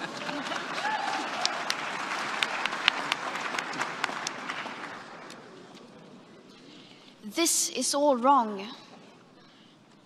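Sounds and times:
audience applause: 0.0s - 5.5s.

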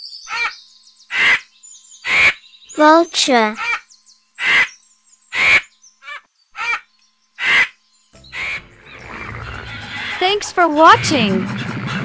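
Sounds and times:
vulture harsh hissing calls: 1.1s - 2.4s, 4.4s - 6.8s, 7.4s - 8.6s
background music: 8.2s - 12.0s.

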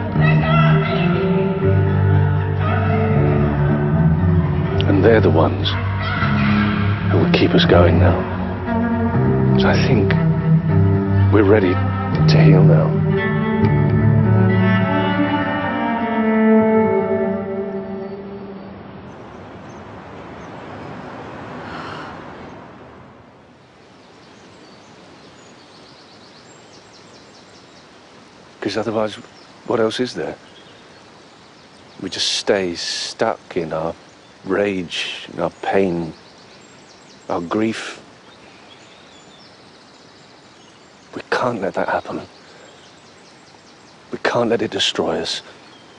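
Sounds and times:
outdoor background hiss: 0.0s - 45.9s
faint birds chirping: 17.4s - 45.9s.

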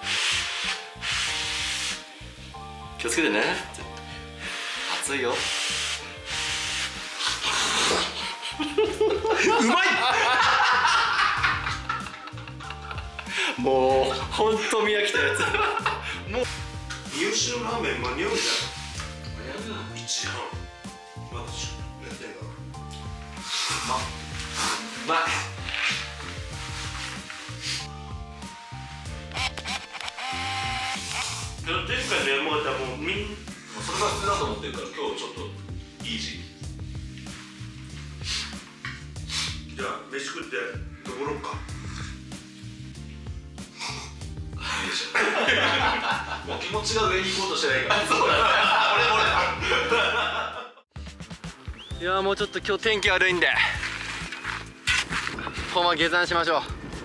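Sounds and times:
soft background music: 0.0s - 57.0s
rough rasping rubbing: 53.6s - 56.0s.

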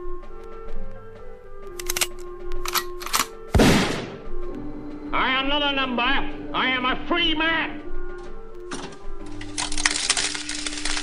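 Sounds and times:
music with held notes: 0.0s - 3.6s, 4.2s - 11.0s
sharp clicks: 1.7s - 3.4s
gunshot sound effect: 3.5s - 4.3s.

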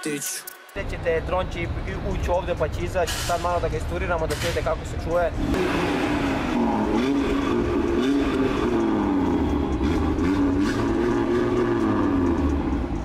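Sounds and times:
car engine revving: 0.8s - 13.0s.

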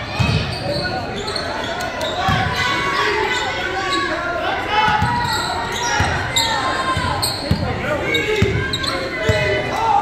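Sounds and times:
people's voices in gym hall: 0.0s - 10.0s.

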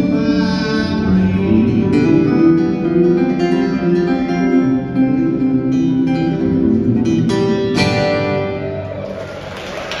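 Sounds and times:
acoustic guitar strumming: 0.0s - 9.2s
audience applause: 8.7s - 10.0s.

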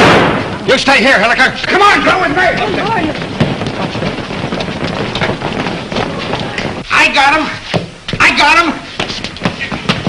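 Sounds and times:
crowd footsteps and scuffling: 1.6s - 10.0s.

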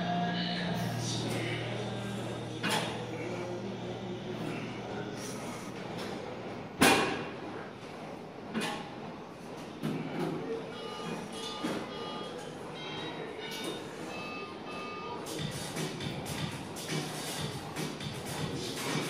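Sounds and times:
room noise: 0.0s - 19.0s.

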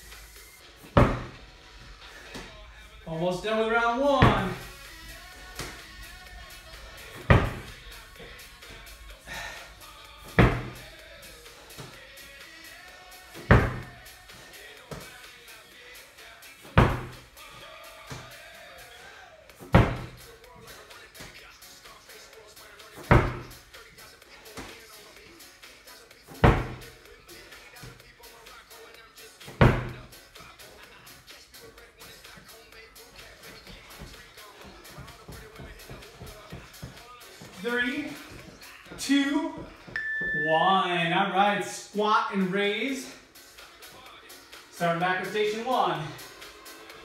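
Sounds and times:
background music: 0.0s - 47.0s
ball thudding on rubber mat: 0.8s - 1.4s, 4.2s - 4.8s, 5.4s - 5.8s, 7.2s - 8.8s, 10.3s - 10.9s, 13.4s - 14.0s, 16.7s - 17.2s, 19.6s - 20.2s, 23.0s - 23.6s, 26.3s - 26.9s, 29.5s - 30.1s.

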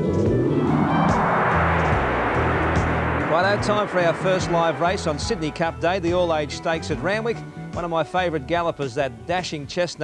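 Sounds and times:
rushing whoosh rising in pitch: 0.0s - 5.6s
steady bass line: 0.0s - 6.3s.

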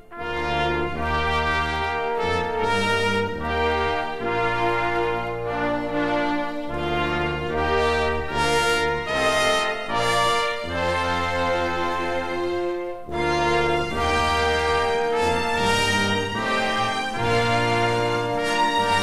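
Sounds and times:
orchestral brass playing chords: 0.0s - 19.0s.

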